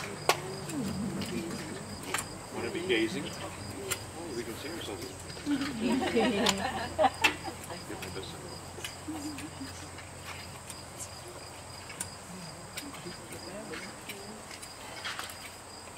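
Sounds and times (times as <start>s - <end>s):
crickets chirring: 0.0s - 15.9s.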